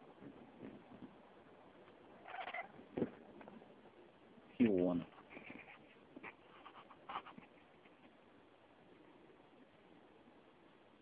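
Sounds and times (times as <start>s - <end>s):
cat giving high call: 2.2s - 2.8s.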